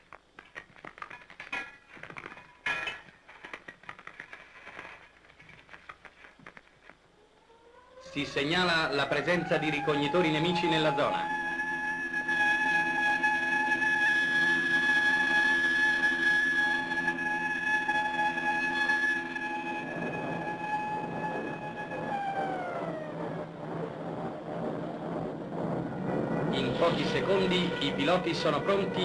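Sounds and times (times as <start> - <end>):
air-raid siren wailing: 7.1 - 29.0
rushing noise: 19.2 - 29.0.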